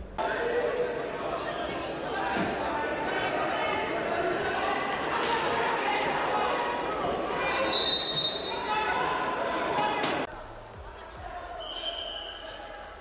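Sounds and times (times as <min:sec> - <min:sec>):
loud arena voices: 0:00.0 - 0:13.0
referee's whistle: 0:07.6 - 0:08.7, 0:11.6 - 0:12.7.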